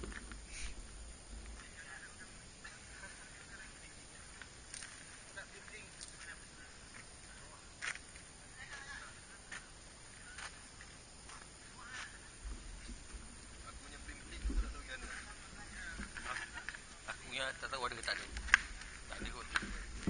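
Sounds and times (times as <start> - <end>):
distant chatter of people: 0.5 - 20.0.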